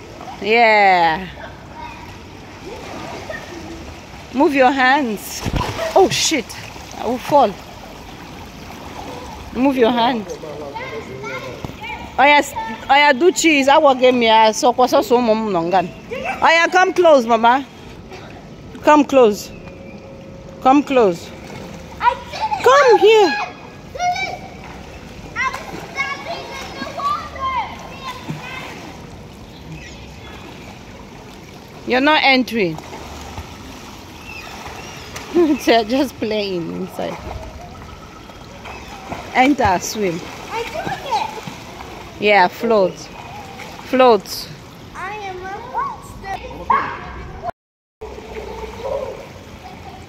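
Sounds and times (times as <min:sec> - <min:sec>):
children splashing in a pool: 0:00.0 - 0:14.4, 0:15.8 - 0:17.0, 0:21.3 - 0:46.8, 0:48.0 - 0:50.0
children calling out: 0:02.6 - 0:03.9, 0:25.4 - 0:29.0, 0:40.4 - 0:41.6.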